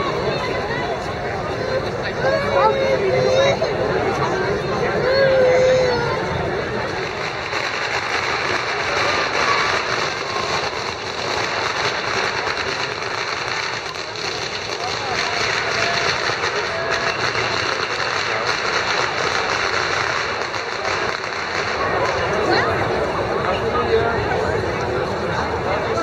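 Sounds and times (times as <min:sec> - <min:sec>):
crowd chatter: 0:00.0 - 0:26.0
firecrackers crackling: 0:00.0 - 0:26.0.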